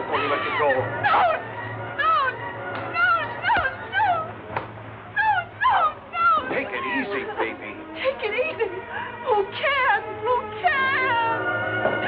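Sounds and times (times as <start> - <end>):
woman whimpering cries: 0.1 - 4.4, 5.1 - 11.4.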